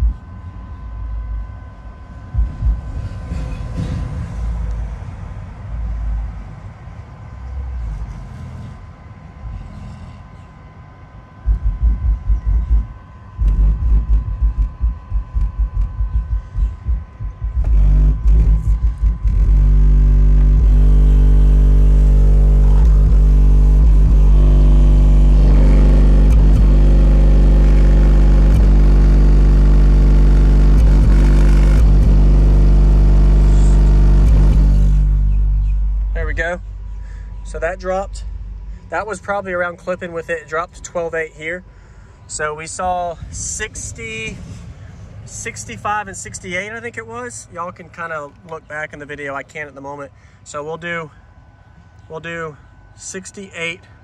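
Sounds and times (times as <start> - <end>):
deep bass tone from subwoofers: 0.0 - 49.5.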